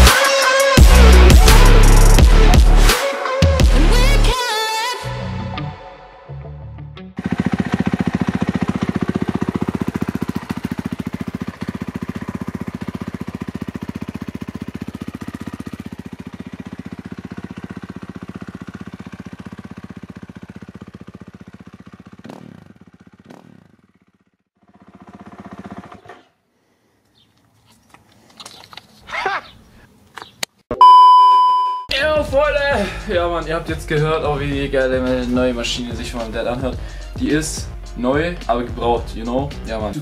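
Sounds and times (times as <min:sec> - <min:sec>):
motorcycle engine running: 0:00.8 - 0:02.9, 0:07.2 - 0:26.1.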